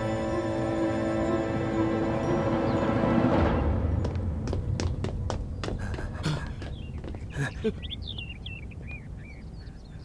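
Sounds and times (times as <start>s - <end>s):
small birds chirping: 4.0s - 10.0s.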